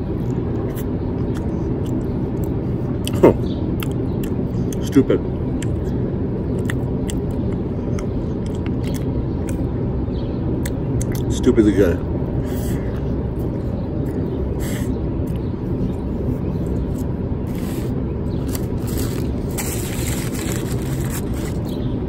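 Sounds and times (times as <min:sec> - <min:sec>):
low outdoor background rush: 0:00.0 - 0:22.0
person chewing food: 0:00.1 - 0:03.2, 0:03.8 - 0:04.8, 0:05.6 - 0:09.7, 0:12.5 - 0:21.7.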